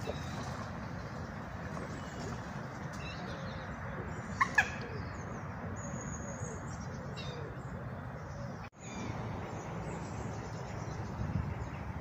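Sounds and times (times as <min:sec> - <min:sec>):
low outdoor background noise: 0:00.0 - 0:12.0.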